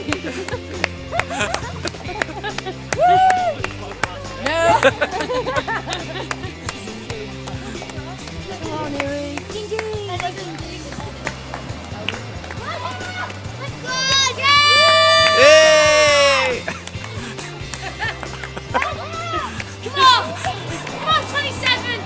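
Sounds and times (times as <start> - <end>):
background music with bassline: 0.0 - 22.0
street noise: 0.0 - 22.0
spectator cheering call: 12.6 - 16.7.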